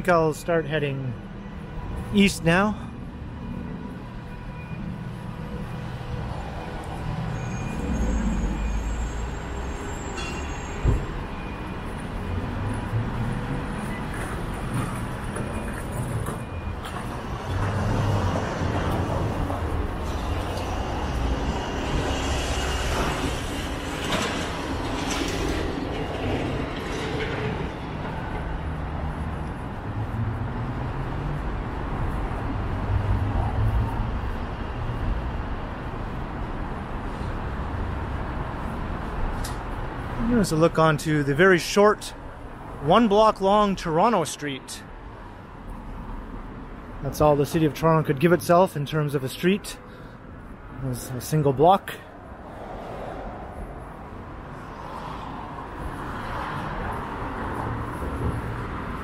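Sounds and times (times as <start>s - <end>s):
street traffic rumble: 0.0s - 59.0s.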